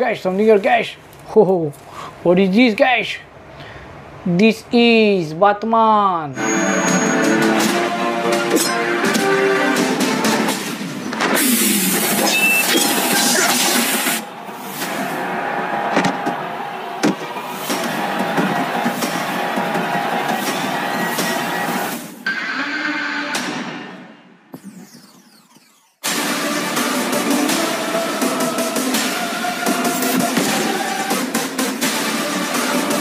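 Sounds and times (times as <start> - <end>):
dramatic music: 6.4 - 15.0, 24.6 - 33.0.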